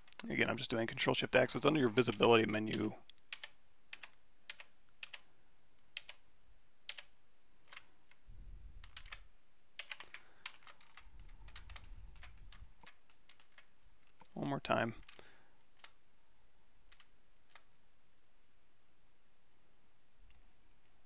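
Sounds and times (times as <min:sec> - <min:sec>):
computer keyboard keystrokes: 0:02.1 - 0:05.2, 0:06.0 - 0:06.2, 0:06.9 - 0:07.1, 0:08.8 - 0:09.2, 0:09.8 - 0:13.7, 0:16.9 - 0:17.7.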